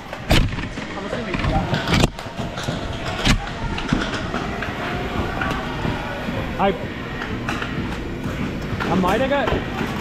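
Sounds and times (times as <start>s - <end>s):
clattering movement noise: 0.0s - 10.0s.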